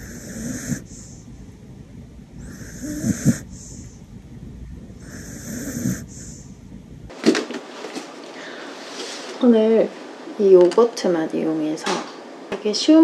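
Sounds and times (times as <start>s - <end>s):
dog snoring: 0.0s - 1.3s, 2.4s - 4.0s, 5.0s - 6.5s.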